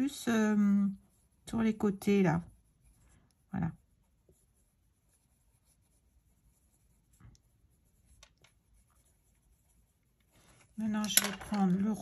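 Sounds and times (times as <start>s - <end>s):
pencil scratching on paper: 0.0s - 12.0s.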